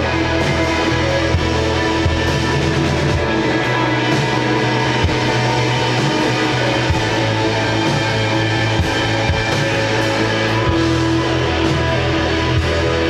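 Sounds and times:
bass guitar: 0.0s - 13.0s
drum kit: 0.0s - 13.0s
electric guitars strummed: 0.0s - 13.0s.

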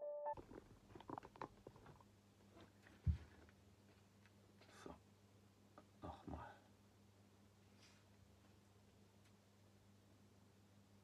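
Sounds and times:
piano music: 0.0s - 0.4s.

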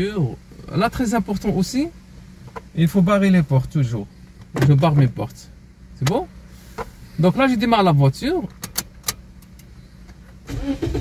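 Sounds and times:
car engine starting and running: 0.0s - 11.0s
ignition key click: 8.5s - 9.7s.

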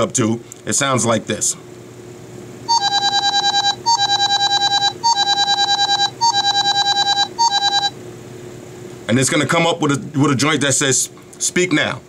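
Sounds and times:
rapid high alarm beeping: 2.7s - 8.0s.

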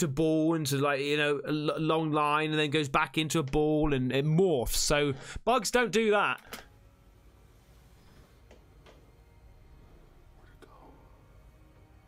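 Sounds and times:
low steady hum: 6.4s - 12.0s
faint whispered voice: 10.3s - 11.4s.

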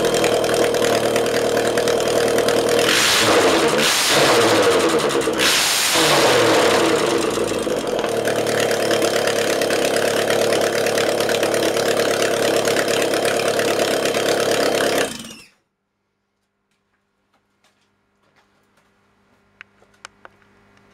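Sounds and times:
car engine revving and idling: 0.0s - 15.4s.

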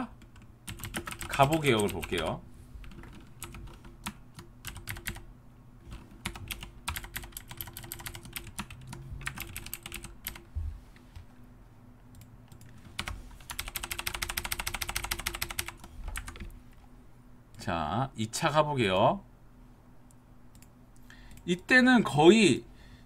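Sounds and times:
typing on computer keyboard: 0.1s - 5.2s, 5.9s - 10.5s, 12.2s - 16.5s.

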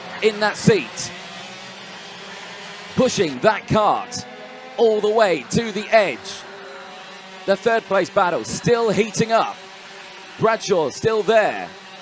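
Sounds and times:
racing kart engines at speed: 0.0s - 12.0s.

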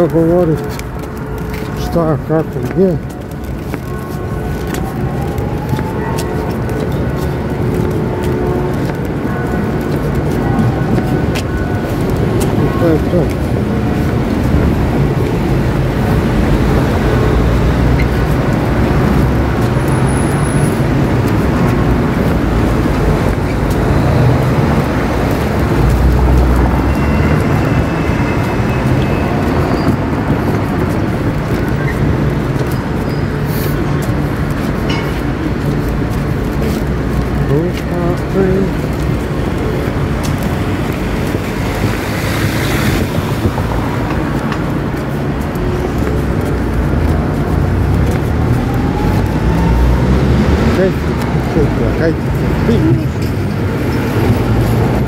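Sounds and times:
street traffic rumble: 0.0s - 55.0s.

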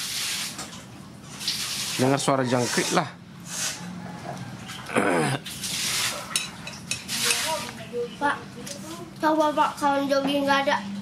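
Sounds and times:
spoons clinking on plates: 6.2s - 7.6s.

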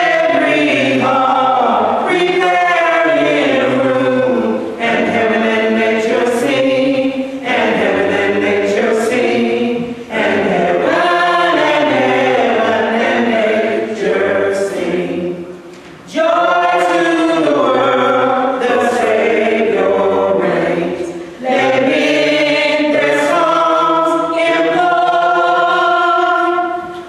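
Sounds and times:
choir singing unaccompanied: 0.0s - 27.0s.

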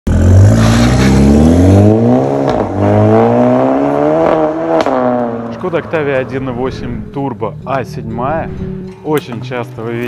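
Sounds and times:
car exhaust accelerating: 0.1s - 9.1s.

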